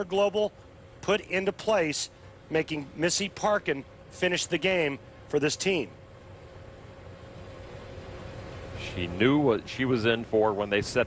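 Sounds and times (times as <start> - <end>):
faint constant hum: 0.0 - 11.0
steady background hiss: 0.0 - 11.0.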